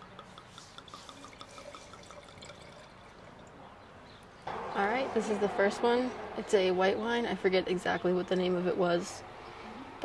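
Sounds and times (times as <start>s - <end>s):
wine glugging into a glass: 1.1s - 3.6s.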